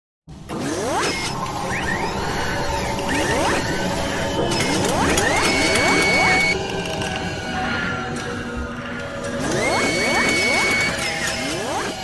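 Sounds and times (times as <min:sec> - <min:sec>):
mechanical clicks and whirring: 0:00.5 - 0:07.3, 0:09.0 - 0:12.0
steady high tone: 0:01.4 - 0:12.0.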